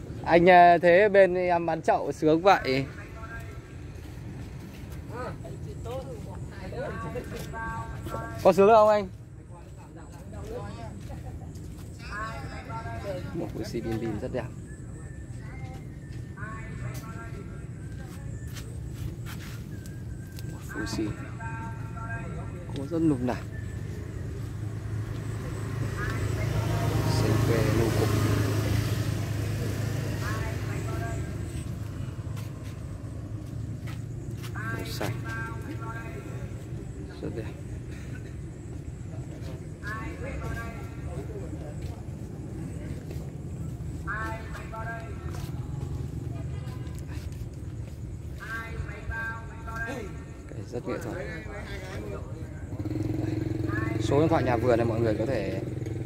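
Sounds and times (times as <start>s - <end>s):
vehicle engine humming: 0.0s - 56.0s
faint voices talking: 2.5s - 56.0s.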